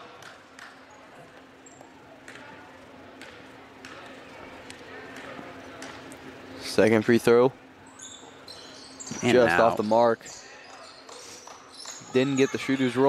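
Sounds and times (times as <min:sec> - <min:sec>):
murmur of crowd voices: 0:00.0 - 0:13.0.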